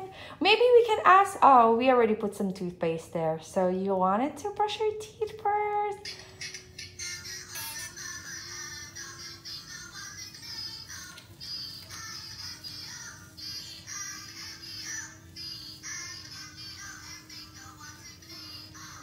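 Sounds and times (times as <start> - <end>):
steady hum: 0.0 - 19.0
tinny electronic children's song: 5.9 - 19.0.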